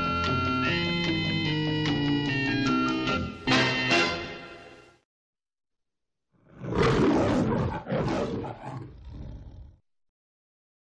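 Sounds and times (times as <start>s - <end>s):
lion roaring: 6.4s - 9.8s.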